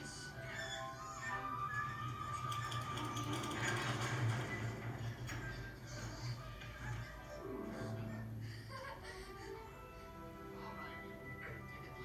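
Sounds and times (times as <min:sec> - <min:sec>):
quiet film music: 0:00.0 - 0:12.0
light mechanical clicking and clatter: 0:02.3 - 0:06.8.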